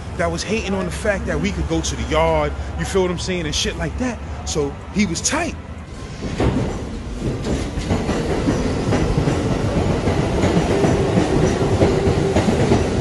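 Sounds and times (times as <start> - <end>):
train wheels clattering on rails: 6.0 - 13.0.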